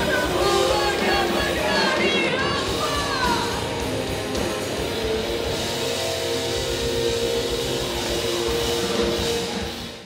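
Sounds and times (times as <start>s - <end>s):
drums: 0.0s - 10.0s
electric guitars: 0.0s - 10.0s.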